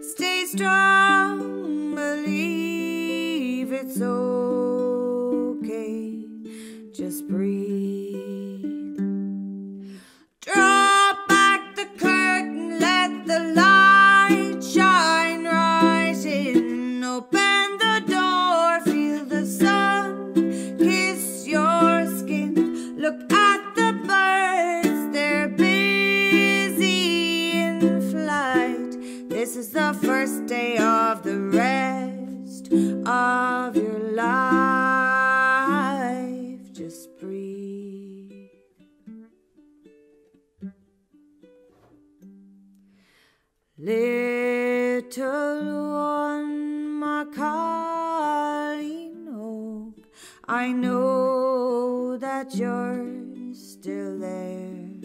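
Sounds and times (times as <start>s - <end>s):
woman singing: 0.0s - 9.1s, 10.4s - 38.6s, 43.8s - 55.0s
ukulele: 0.0s - 43.2s, 43.8s - 55.0s.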